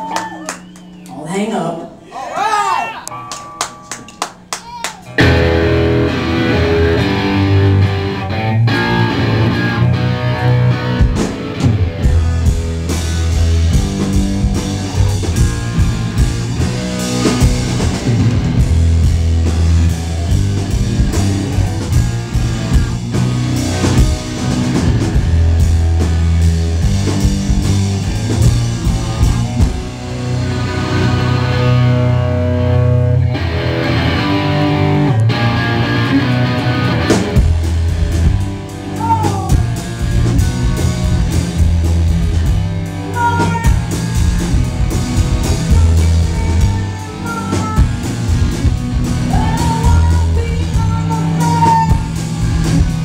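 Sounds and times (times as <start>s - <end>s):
rock band playing live: 3.0s - 53.0s.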